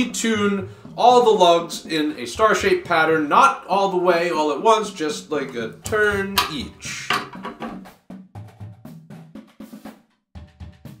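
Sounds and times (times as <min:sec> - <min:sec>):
drum key clicking on rods: 0:05.4 - 0:07.9.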